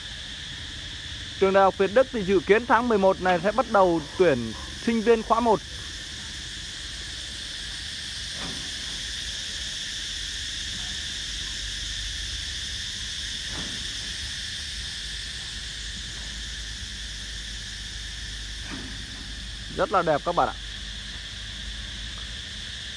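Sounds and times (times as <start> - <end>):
insects droning: 0.0 - 22.9.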